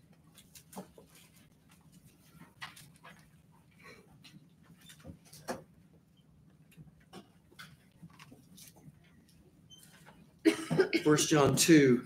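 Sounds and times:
pages being turned: 0.3s - 3.3s, 8.0s - 8.9s
man speaking loudly: 11.0s - 12.0s.

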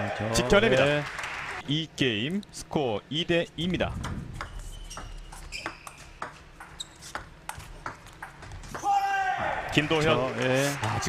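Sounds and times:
shoes squeaking on floor: 4.3s - 9.0s.

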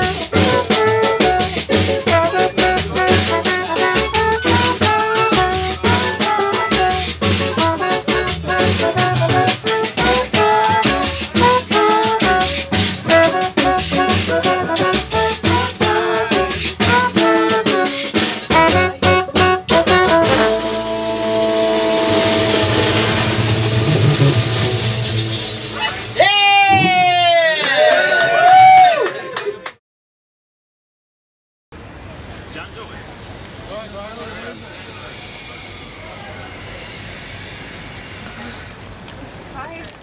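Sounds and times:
live band playing up-tempo tune: 0.0s - 27.1s
cymbal wash: 20.5s - 26.2s
person shouting: 25.8s - 27.6s.

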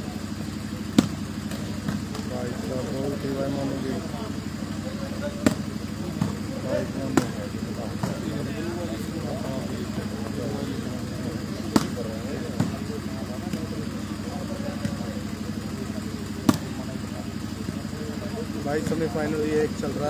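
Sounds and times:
onlookers' voices: 0.0s - 20.0s
steady low hum: 0.0s - 20.0s
volleyball slaps: 0.8s - 2.6s, 4.6s - 17.0s.

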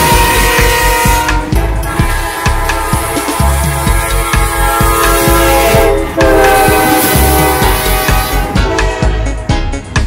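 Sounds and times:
locomotive air horn: 0.0s - 9.7s
background music with steady beat: 0.0s - 10.0s.

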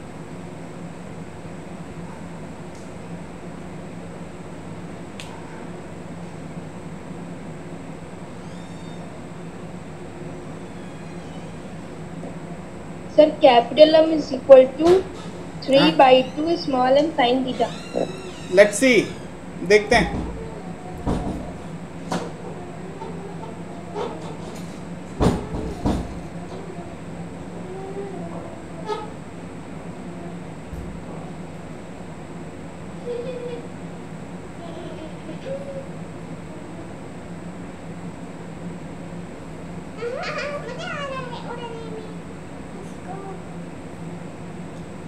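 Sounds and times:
room hum: 0.0s - 45.0s
dull knocks: 19.9s - 22.3s, 25.2s - 26.2s.

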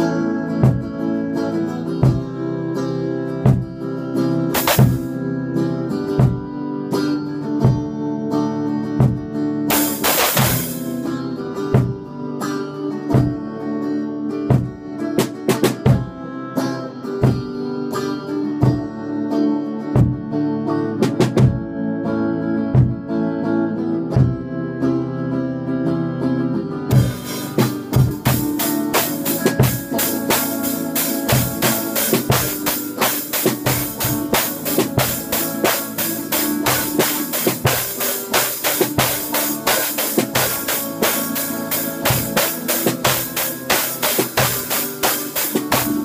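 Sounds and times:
guitar chords: 0.0s - 46.0s
drum hits: 0.6s - 1.0s, 2.0s - 2.3s, 3.5s - 3.8s, 4.6s - 5.2s, 9.0s - 11.0s, 11.8s - 12.1s, 14.5s - 16.2s, 21.0s - 21.7s, 26.9s - 46.0s
cymbal crash: 4.6s - 5.1s, 9.7s - 11.0s.

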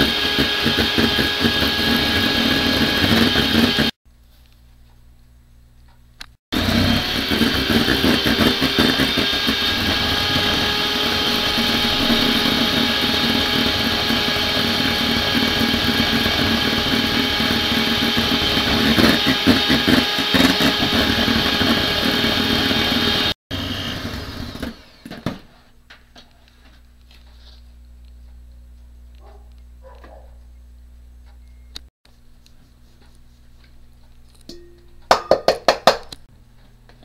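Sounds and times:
electric hand mixer whirring: 0.0s - 4.0s, 6.6s - 25.4s.

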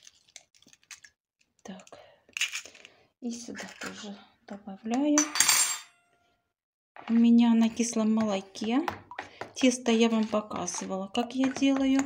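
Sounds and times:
fork scraping plastic bowl: 8.6s - 12.0s.

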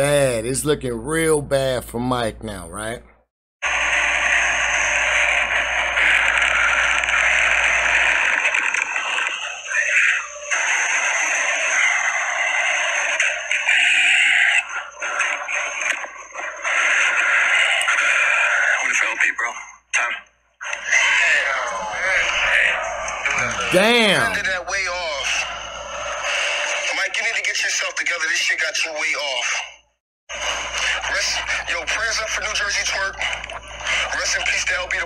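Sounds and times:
crowd shouting and cheering: 23.4s - 24.4s.

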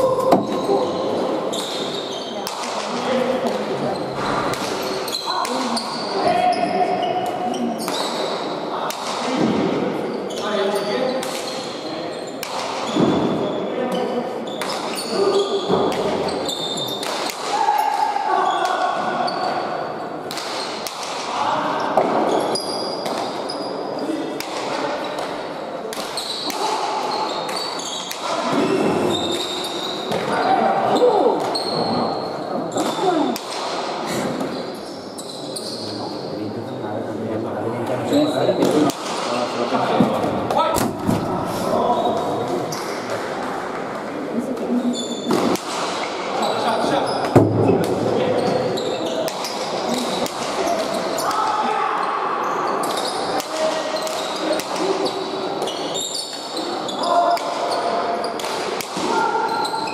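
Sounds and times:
people's voices: 0.0s - 34.6s.

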